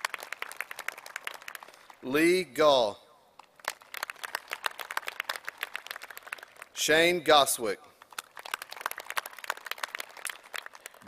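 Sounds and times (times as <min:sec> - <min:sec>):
crowd applause: 0:00.0 - 0:02.0, 0:03.6 - 0:06.7, 0:08.1 - 0:11.0.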